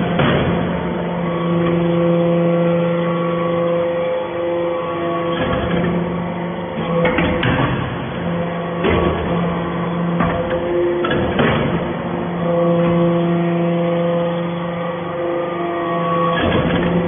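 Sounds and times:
hydraulic press humming: 0:00.0 - 0:17.0.

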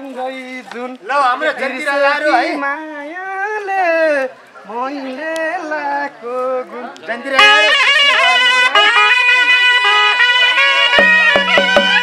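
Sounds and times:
shawms playing held melody: 0:07.4 - 0:12.0.

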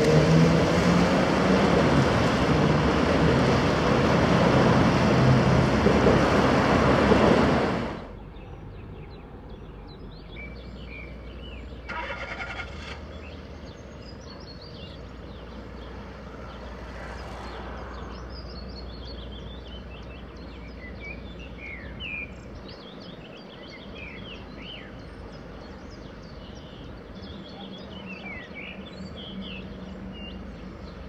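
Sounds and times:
small birds chirping: 0:08.1 - 0:12.0, 0:12.6 - 0:31.0.

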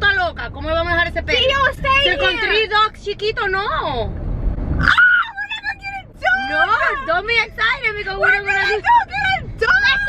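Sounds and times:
car cabin rumble: 0:00.0 - 0:10.0
girl shrieking: 0:04.8 - 0:05.4.

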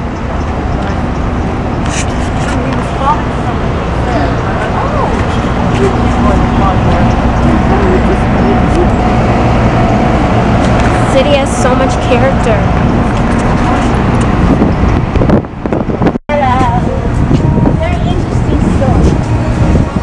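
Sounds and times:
indistinct passers-by voices: 0:00.0 - 0:20.0
loud low rumble: 0:00.0 - 0:20.0
traffic: 0:00.0 - 0:20.0.

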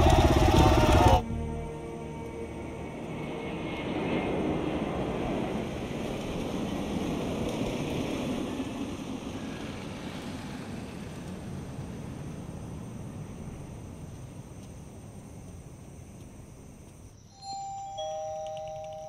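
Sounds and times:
motor scooter passing: 0:00.0 - 0:01.5.

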